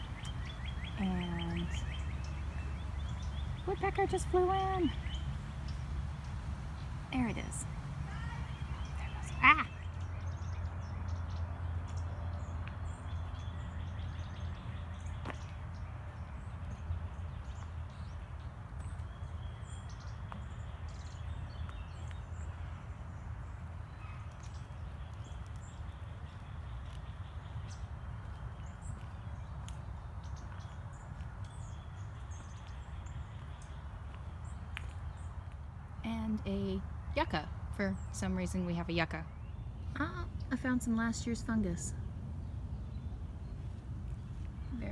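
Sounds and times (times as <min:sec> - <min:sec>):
songbirds chirping: 0:00.0 - 0:44.9
steady low rumble: 0:00.0 - 0:44.9.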